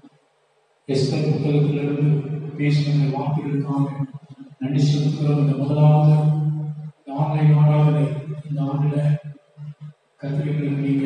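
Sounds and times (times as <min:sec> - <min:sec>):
man chanting through microphone: 0:00.9 - 0:11.0.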